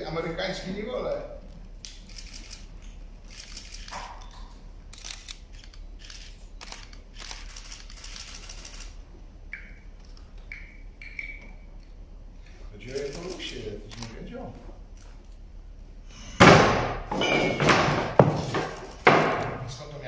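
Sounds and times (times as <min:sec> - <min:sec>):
camera shutters clicking: 0:01.9 - 0:04.3, 0:04.9 - 0:09.0, 0:12.9 - 0:14.2.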